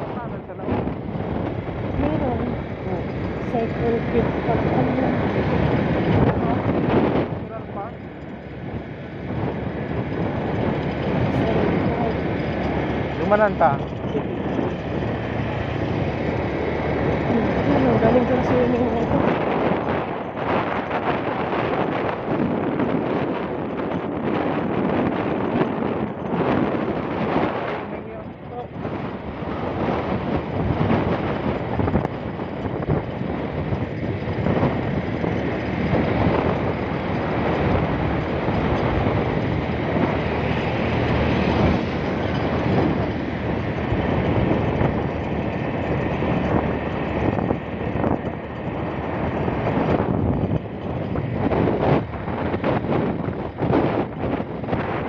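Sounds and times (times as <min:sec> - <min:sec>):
motorcycle engine: 0:00.0 - 0:55.0
road noise: 0:00.0 - 0:55.0
wind rushing over microphone: 0:00.0 - 0:55.0.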